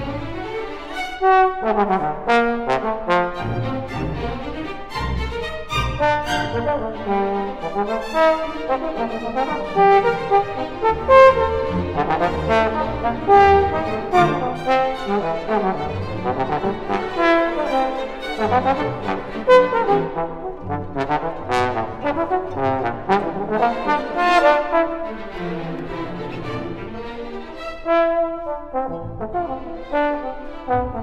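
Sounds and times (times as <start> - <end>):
string orchestra: 0.0 - 31.0
trombone solo: 5.7 - 25.0, 27.8 - 31.0.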